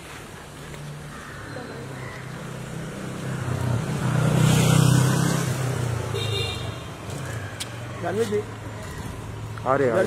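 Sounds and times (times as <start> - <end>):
car passing close by: 2.5 - 6.2.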